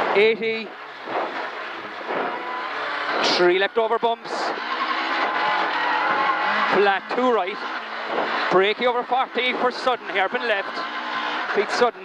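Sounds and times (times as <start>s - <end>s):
rally car engine revving: 0.0s - 12.0s.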